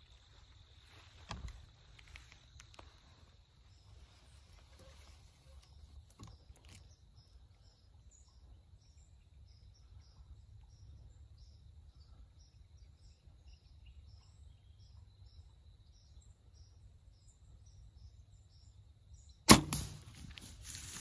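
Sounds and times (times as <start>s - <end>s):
faint low wind rumble: 0.0s - 21.0s
bow releasing arrow crack: 19.5s - 21.0s
rustling: 19.8s - 21.0s.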